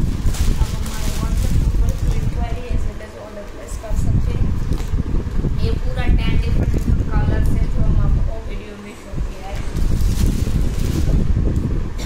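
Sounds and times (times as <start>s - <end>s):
low rumble on microphone: 0.0s - 12.0s.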